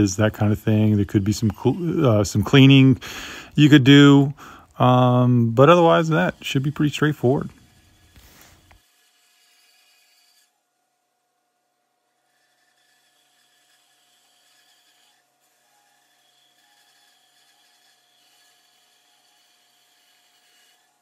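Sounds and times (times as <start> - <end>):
band saw cutting wood: 0.0 - 10.6, 12.1 - 21.0.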